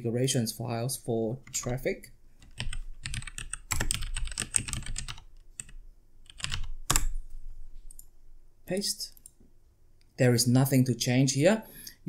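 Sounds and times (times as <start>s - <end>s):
typing on computer keyboard: 2.4s - 7.2s.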